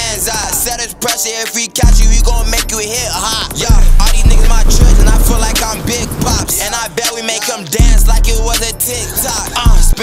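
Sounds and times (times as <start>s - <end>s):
hip hop beat with heavy bass: 0.0s - 10.0s
vocal line: 1.8s - 10.0s.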